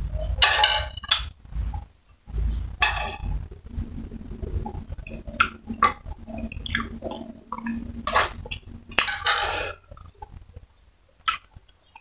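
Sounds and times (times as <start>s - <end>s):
person chewing: 3.7s - 12.0s.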